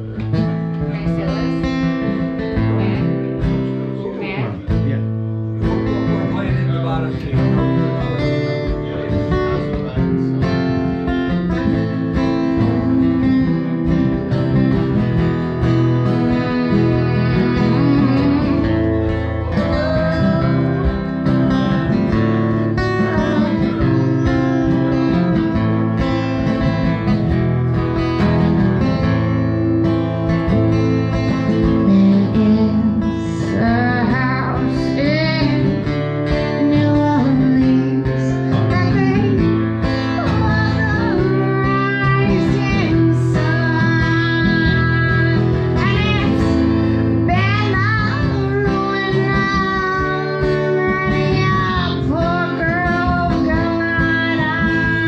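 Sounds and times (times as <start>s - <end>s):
acoustic guitars strumming: 0.0s - 55.0s
person singing: 16.0s - 26.0s, 31.5s - 55.0s.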